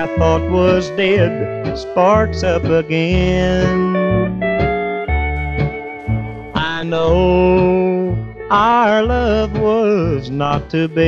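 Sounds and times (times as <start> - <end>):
bass line: 0.0 - 11.0
steel guitar gliding notes: 0.0 - 11.0.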